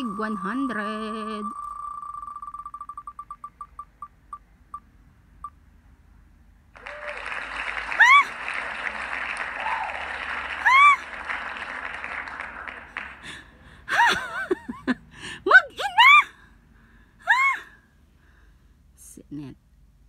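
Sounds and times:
applause sound effect: 6.8s - 13.3s.

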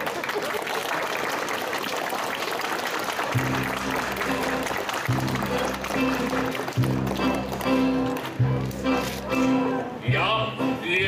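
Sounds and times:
audience clapping: 0.0s - 9.2s
string band with violins playing: 3.4s - 11.0s.

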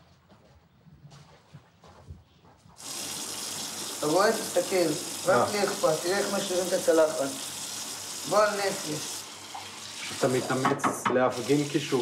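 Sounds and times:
tap running into a sink: 9.4s - 11.9s.

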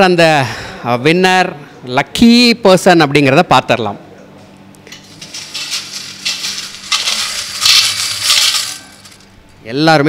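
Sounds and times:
tokens rattling in metal pot: 4.9s - 9.3s.

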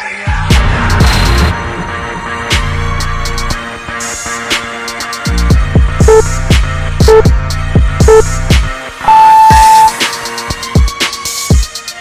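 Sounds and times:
electronic music with steady beat: 2.4s - 12.0s
long high timer beep: 6.0s - 6.3s, 7.1s - 7.3s, 8.1s - 8.3s, 9.0s - 10.0s.

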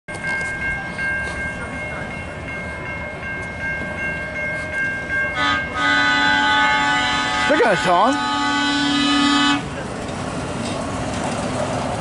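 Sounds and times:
crossing bell ringing: 0.1s - 10.8s
truck horn: 5.4s - 9.7s.

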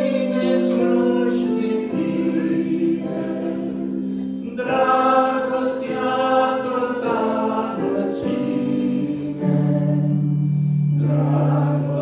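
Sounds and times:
woman and man singing in harmony: 0.0s - 10.4s.

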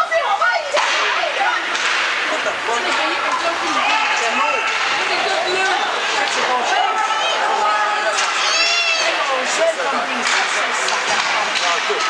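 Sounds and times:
calling voices: 0.0s - 12.0s
sharp crack of hockey stick: 1.7s - 2.1s.

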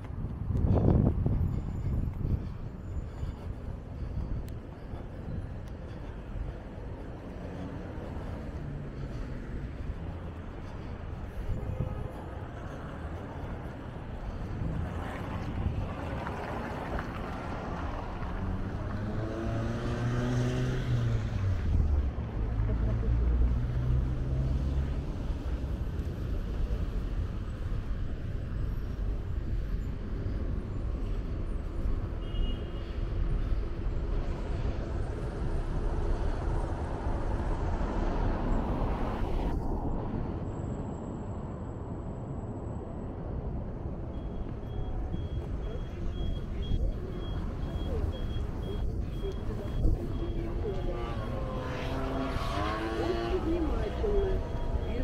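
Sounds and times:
cars passing on road: 0.0s - 55.0s
car passing close: 14.6s - 25.5s, 44.6s - 55.0s.

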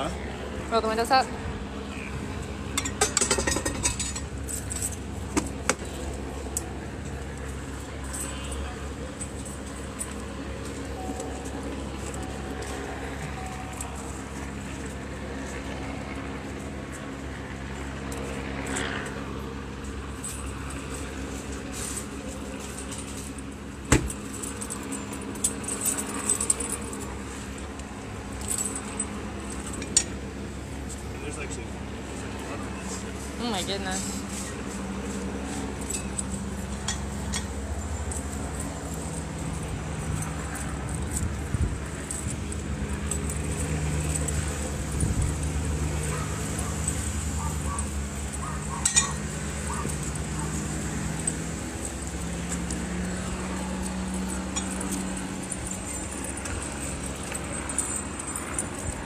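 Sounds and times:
low engine hum: 0.0s - 59.0s
street noise: 0.0s - 59.0s
metallic clinks in a bag: 2.6s - 59.0s.

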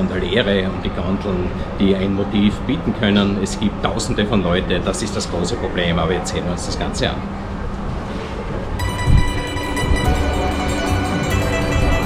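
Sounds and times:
low rumbling street noise: 0.0s - 12.0s
background music: 8.8s - 12.0s.

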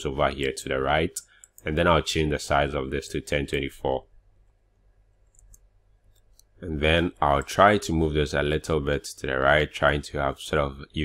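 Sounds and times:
computer keys clicking: 5.2s - 6.5s.

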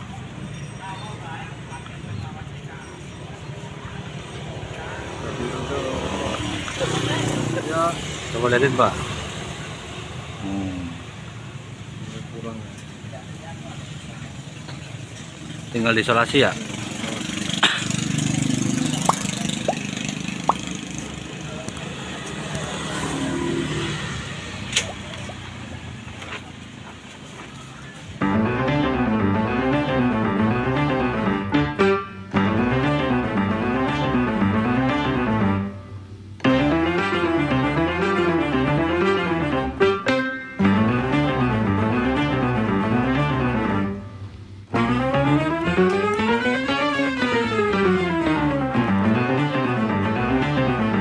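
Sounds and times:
vehicle engine rumble passing: 0.0s - 39.9s.

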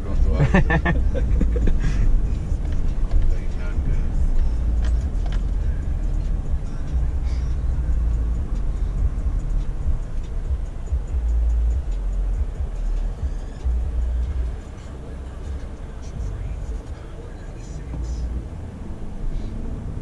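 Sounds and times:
car cabin road rumble: 0.0s - 20.0s.

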